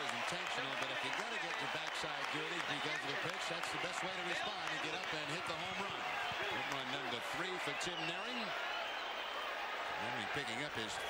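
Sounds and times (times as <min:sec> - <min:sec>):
men talking: 0:00.0 - 0:08.6, 0:09.9 - 0:11.0.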